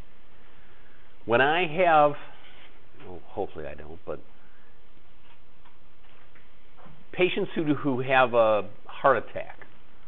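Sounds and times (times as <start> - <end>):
background hiss: 0.0 - 10.0
man speaking: 1.2 - 2.4, 3.0 - 4.4, 7.1 - 9.7.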